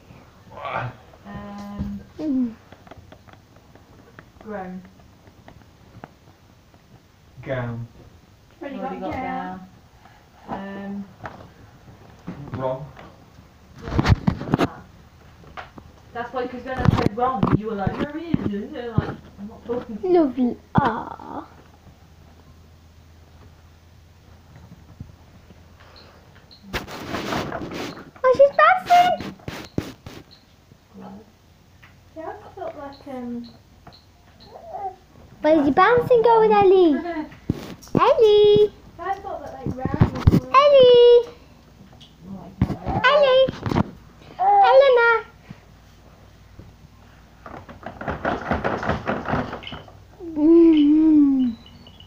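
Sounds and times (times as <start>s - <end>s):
plastic jumper clattering and rattling: 47.4s - 50.0s.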